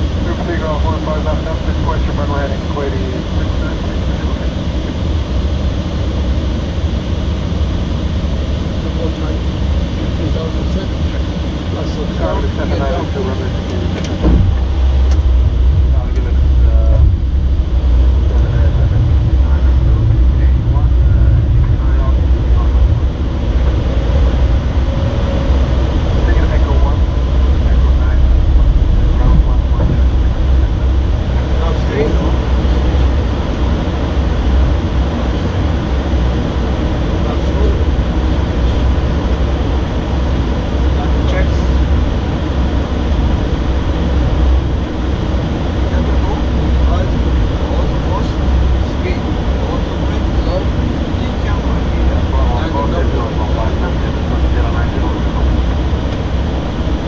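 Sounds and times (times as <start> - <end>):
airflow and engine rumble: 0.0 - 57.0.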